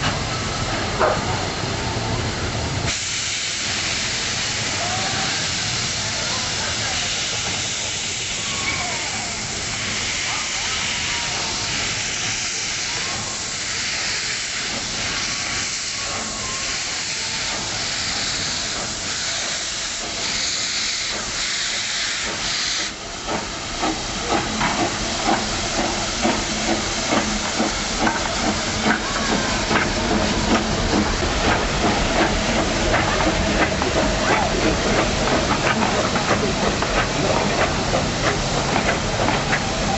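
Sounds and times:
steam hissing: 0.0s - 39.9s
steam locomotive exhaust chuffs: 2.6s - 39.9s.

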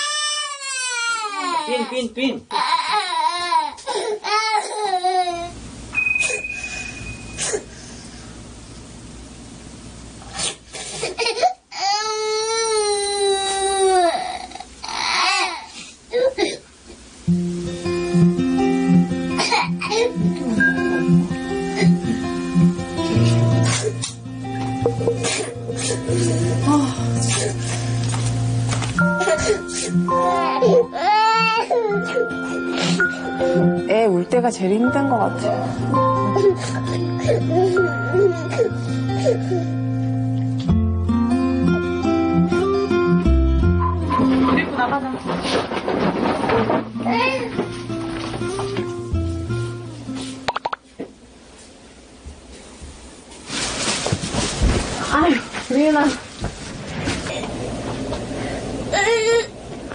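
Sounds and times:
toddler crying: 0.0s - 5.6s, 11.1s - 16.6s, 29.1s - 33.0s, 36.2s - 39.8s, 47.1s - 47.6s, 58.9s - 59.6s
background music: 17.4s - 44.9s.

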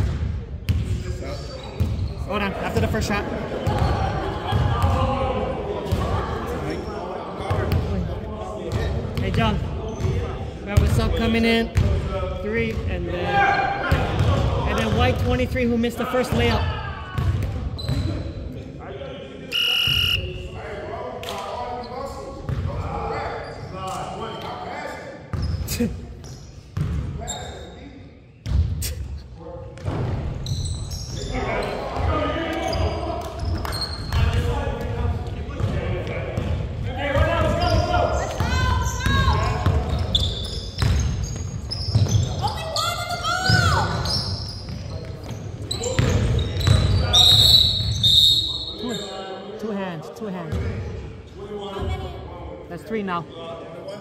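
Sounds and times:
players' indistinct voices: 0.0s - 54.0s.

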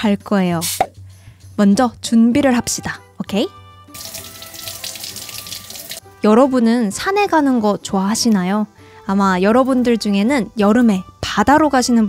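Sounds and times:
water splashing into metal sink: 3.9s - 6.0s.

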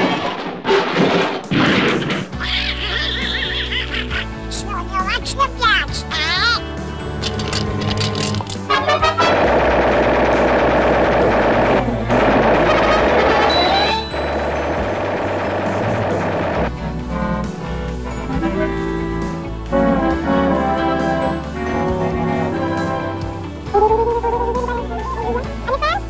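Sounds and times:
brass-led music: 6.0s - 26.0s
orchestral score: 6.1s - 26.0s
rapid gunfire sound effects: 8.8s - 16.7s.

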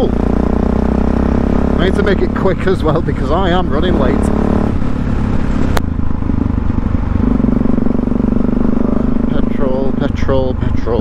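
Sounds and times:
motorcycle engine cruising: 0.0s - 11.0s
wind noise: 4.6s - 8.8s.

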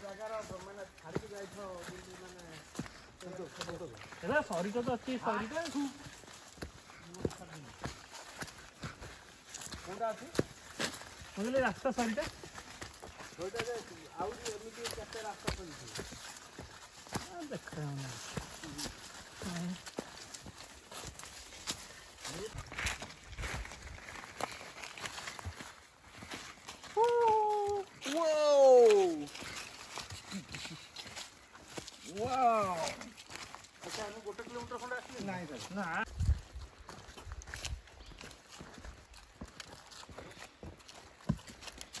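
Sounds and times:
footsteps on dirt trail: 0.0s - 42.0s.

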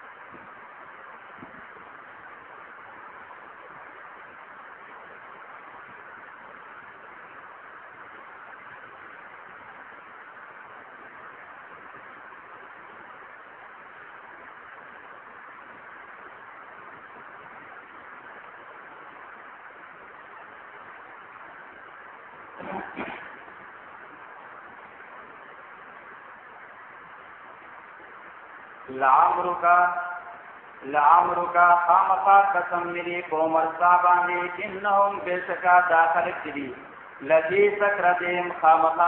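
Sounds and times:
recording background hiss: 0.0s - 39.0s.

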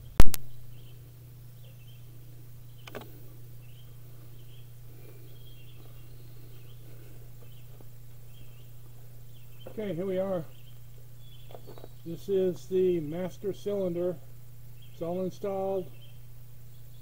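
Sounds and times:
faint bird chirps: 0.0s - 14.1s, 14.7s - 17.0s
steady low hum: 0.0s - 17.0s
sharp loud click: 0.2s - 0.5s, 2.8s - 3.1s.

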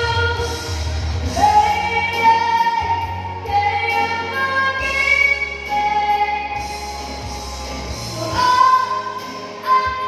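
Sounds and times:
backing music: 0.0s - 10.0s
girl singing a ballad: 0.0s - 10.0s.

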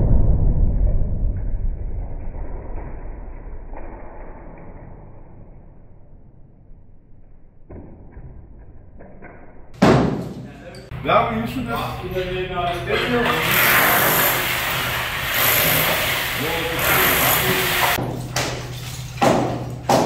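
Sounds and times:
deep boom: 0.0s - 4.3s.

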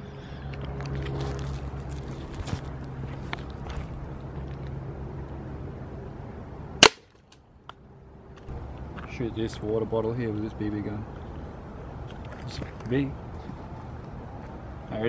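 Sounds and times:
bb gun shot: 6.8s - 7.1s.

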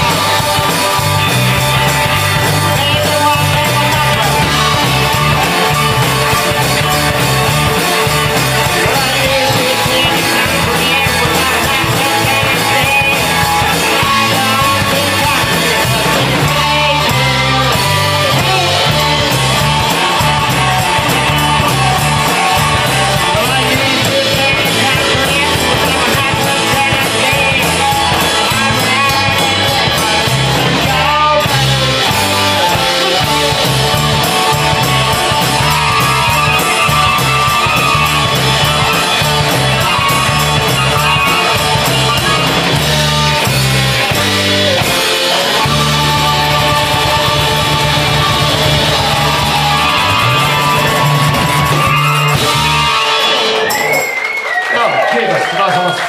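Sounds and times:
live band playing rock song: 0.0s - 56.0s.

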